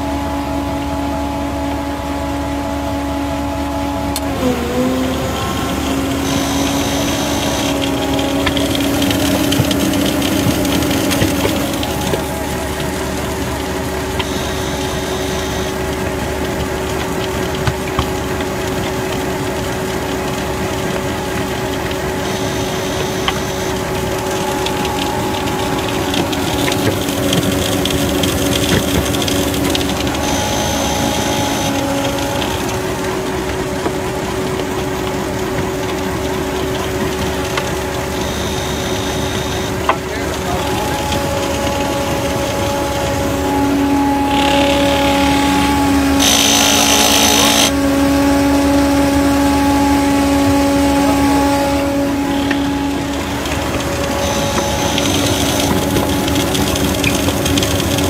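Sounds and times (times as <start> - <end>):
concrete mixer engine drone: 0.0 - 58.0.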